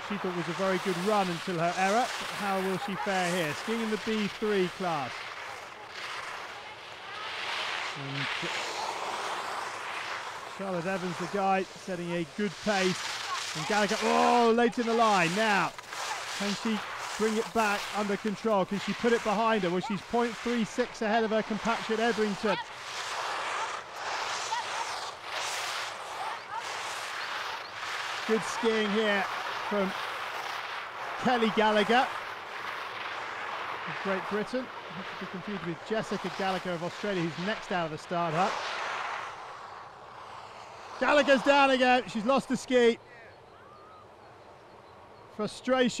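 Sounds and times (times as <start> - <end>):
skis scraping on snow: 0.0 - 43.0, 45.4 - 46.0.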